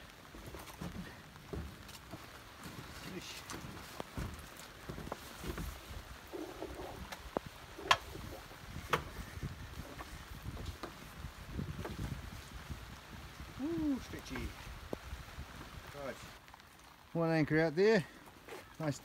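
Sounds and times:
wind noise on microphone: 4.2 - 16.4.

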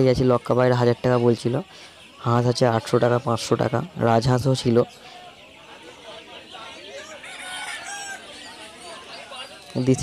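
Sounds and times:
chickens clucking: 0.0 - 10.0
rooster crowing: 6.9 - 8.6.

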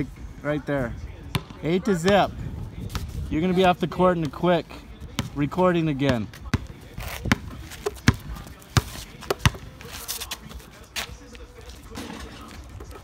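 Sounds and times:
basketball bouncing on pavement: 1.1 - 13.0.

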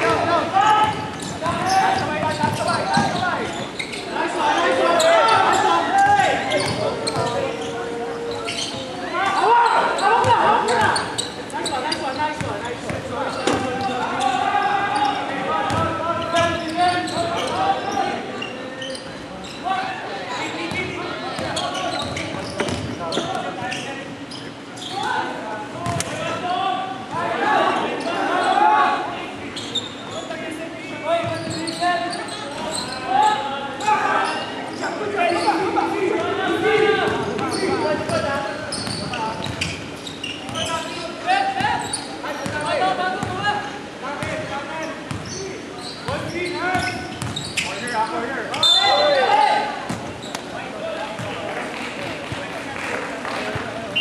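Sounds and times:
players' indistinct calls: 0.0 - 54.0.

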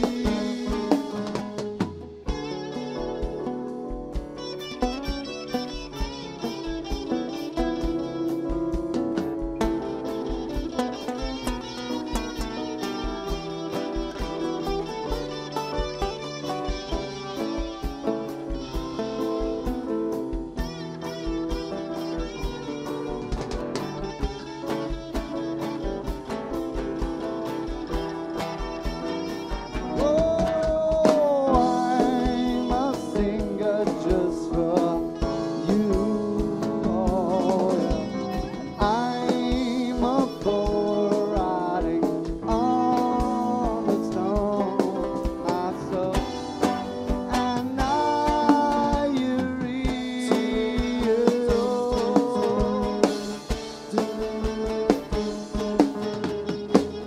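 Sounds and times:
bass and keyboards: 0.0 - 57.0
drum kit beat: 0.0 - 57.0
guitar lines: 0.0 - 57.0
live rock band playing: 0.0 - 57.0.

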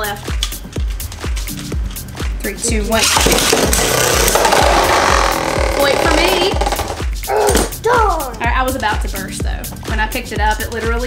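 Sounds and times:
background music with steady beat: 0.0 - 11.0
spinning tops grinding on plastic: 3.0 - 7.1.

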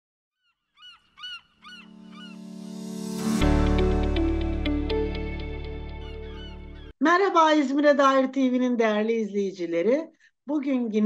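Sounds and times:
bird calling: 0.4 - 2.4, 5.9 - 6.9
intro music: 1.8 - 6.9.

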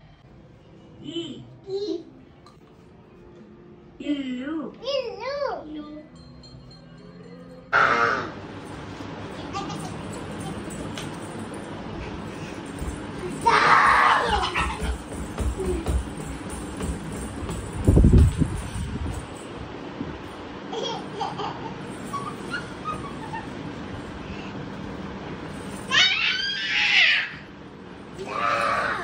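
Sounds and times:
child squealing laughter: 20.8 - 23.6.

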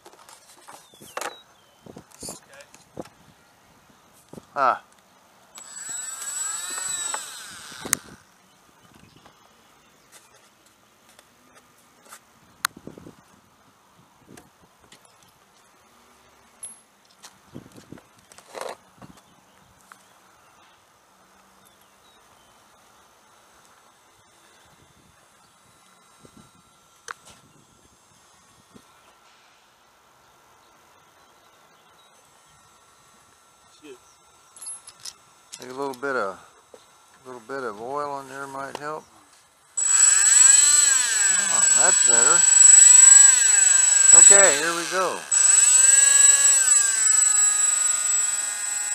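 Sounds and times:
electric motor whine: 5.6 - 8.5, 39.8 - 48.9.

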